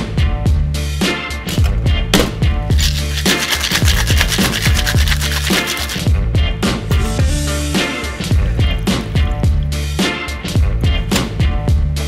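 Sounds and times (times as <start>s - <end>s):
funk music with steady beat: 0.0s - 12.0s
ice rattling in shaker tin: 2.7s - 6.1s.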